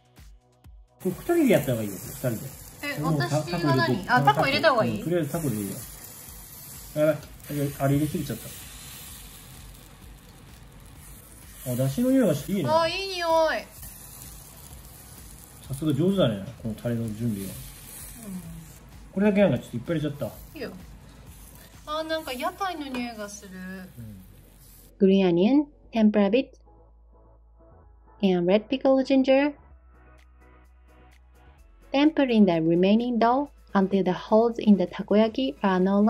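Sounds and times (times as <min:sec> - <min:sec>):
two people talking: 0:01.0 - 0:06.1, 0:06.8 - 0:08.6, 0:11.6 - 0:13.8, 0:15.6 - 0:24.4
batter sizzling: 0:01.0 - 0:25.0.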